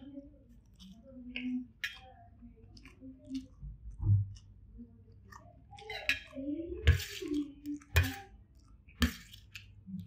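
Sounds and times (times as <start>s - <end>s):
person chewing rice: 0.4s - 6.1s.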